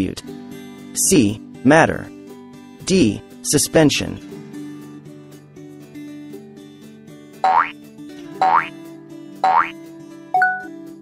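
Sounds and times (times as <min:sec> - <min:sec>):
light background music: 0:00.0 - 0:11.0.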